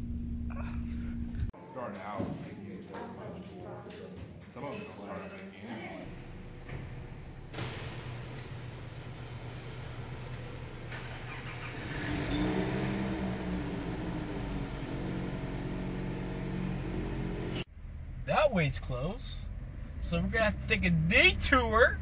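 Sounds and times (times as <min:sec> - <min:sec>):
car engine idling: 0:06.1 - 0:22.0
car revving and pulling away: 0:06.1 - 0:22.0.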